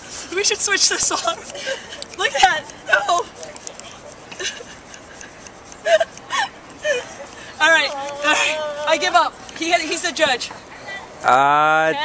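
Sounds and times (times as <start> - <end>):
hand air pump rasping: 0.0 - 10.5.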